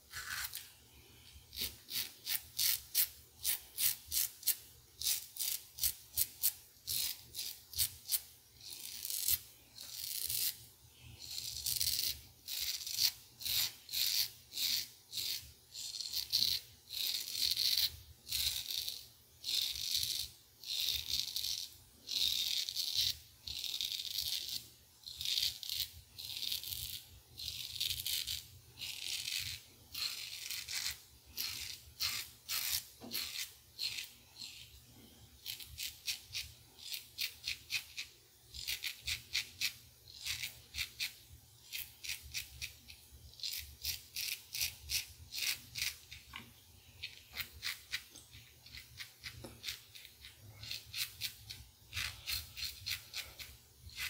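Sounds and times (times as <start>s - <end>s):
razor scraping stubble: 0.1s - 0.7s, 1.5s - 10.6s, 11.2s - 34.8s, 35.4s - 46.4s, 47.0s - 54.0s.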